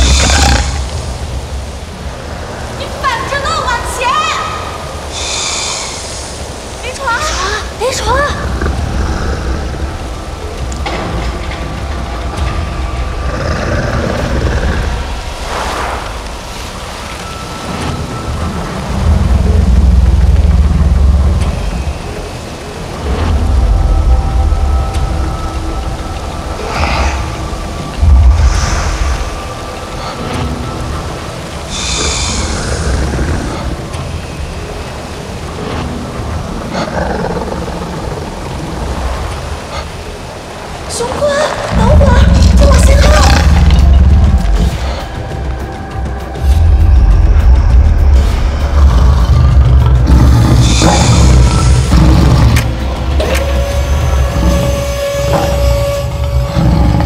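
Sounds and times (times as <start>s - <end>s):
sustained music score: 0.0s - 57.0s
deep rumbling booms: 26.4s - 29.7s.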